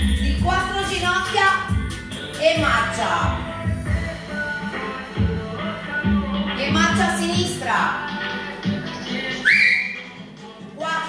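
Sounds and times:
workout music: 0.0s - 11.0s
rising whistle: 9.4s - 10.1s.

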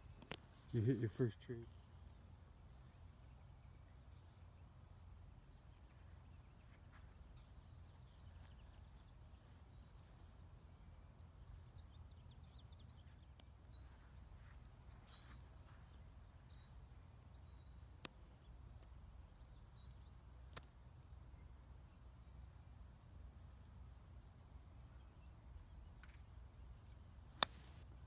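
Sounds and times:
faint bird chirps: 0.0s - 23.8s.

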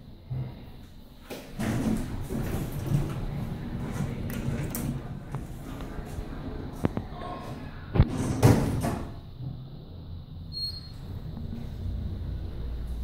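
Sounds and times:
low elevator hum: 0.0s - 13.0s
elevator doors closing: 1.5s - 9.3s, 10.3s - 13.0s.

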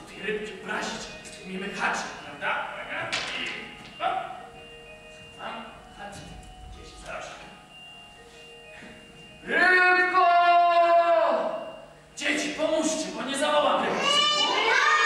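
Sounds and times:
faint stage sounds: 0.0s - 15.0s.

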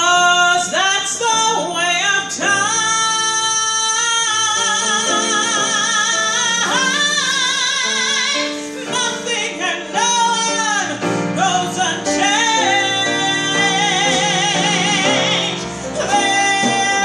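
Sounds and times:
woman singing jazz ballad: 0.0s - 17.0s.

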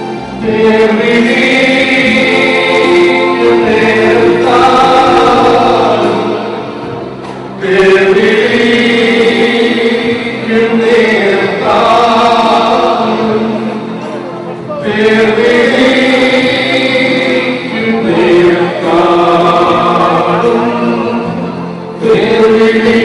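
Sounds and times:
group singing a slow hymn: 0.0s - 23.0s.

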